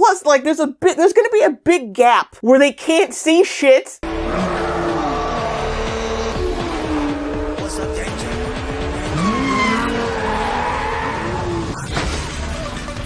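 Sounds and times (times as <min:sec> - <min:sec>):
sports car engines revving: 0:04.0 - 0:11.8
film score music: 0:04.0 - 0:13.0
tires squealing: 0:04.0 - 0:13.0.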